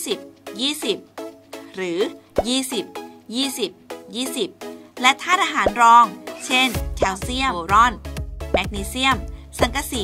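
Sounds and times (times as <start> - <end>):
background music: 0.0 - 10.0
woman narrating: 0.0 - 10.0.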